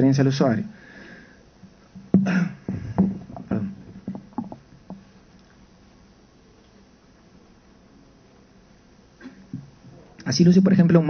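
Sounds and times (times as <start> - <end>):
dull thumps and knocks: 2.0 - 5.1.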